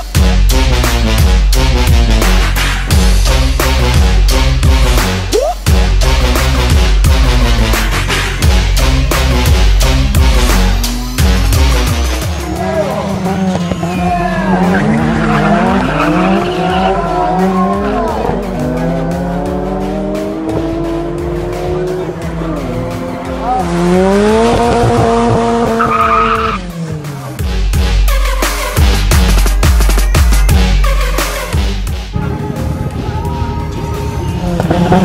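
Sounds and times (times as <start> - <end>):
car engine revving hard: 11.6 - 27.1, 34.4 - 35.0.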